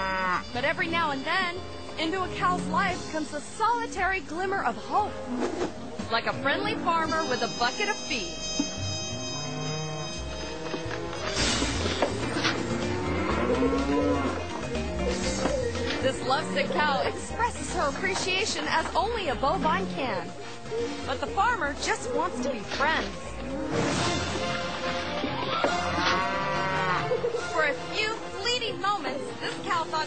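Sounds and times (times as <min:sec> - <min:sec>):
cow mooing: 0:00.0 - 0:00.5, 0:08.8 - 0:17.1, 0:25.5 - 0:27.3
background music: 0:00.0 - 0:30.0.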